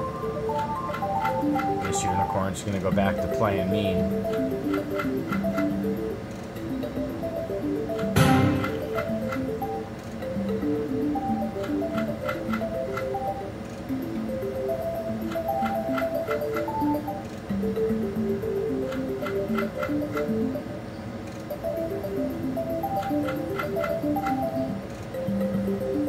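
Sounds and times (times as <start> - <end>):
slot machine spin melody: 0.0 - 20.9, 21.5 - 26.0
reels stopping ticks: 0.0 - 26.0.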